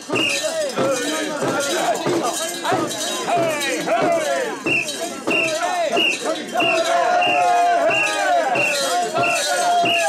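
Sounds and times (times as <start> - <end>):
men chanting together: 0.2 - 10.0.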